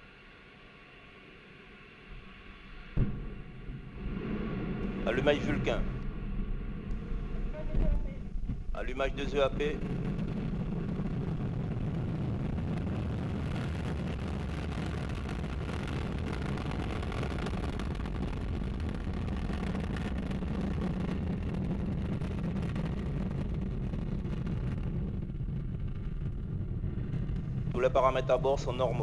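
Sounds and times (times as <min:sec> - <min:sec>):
rocket engine rumble: 0:02.1 - 0:29.0.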